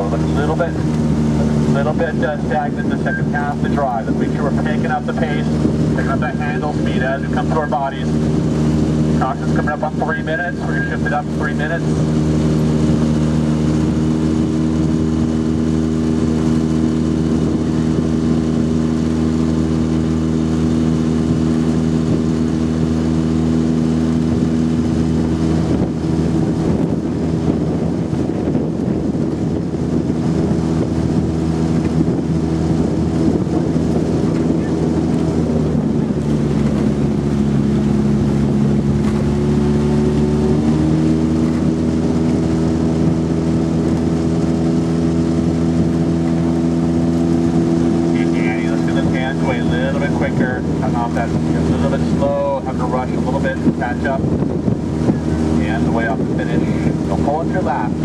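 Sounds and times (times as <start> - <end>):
motorboat engine running: 0.0 - 58.0.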